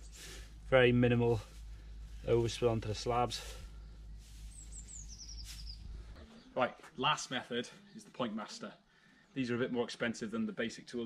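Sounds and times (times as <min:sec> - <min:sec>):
low outdoor rumble: 0:00.0 - 0:08.5
songbird chirping: 0:00.0 - 0:11.0
man speaking: 0:00.7 - 0:01.6, 0:02.2 - 0:03.6, 0:06.5 - 0:08.8, 0:09.4 - 0:11.0.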